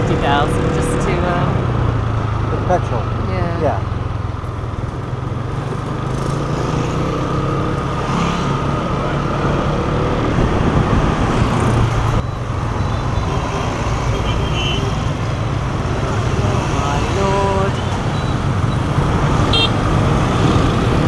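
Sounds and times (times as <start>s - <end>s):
scooter engine humming: 3.2s - 21.0s
wind noise on microphone: 10.1s - 12.3s.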